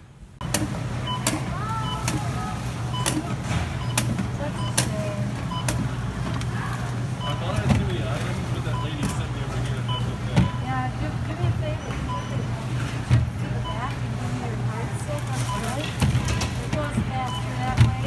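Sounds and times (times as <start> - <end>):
short electronic beeps: 1.0 - 4.9, 5.5 - 5.8, 7.2 - 7.6, 9.8 - 10.7, 11.8 - 12.5.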